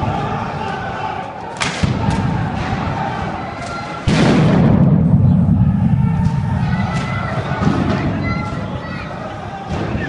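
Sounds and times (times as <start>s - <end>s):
explosion bang with low rumble: 4.0s - 8.3s.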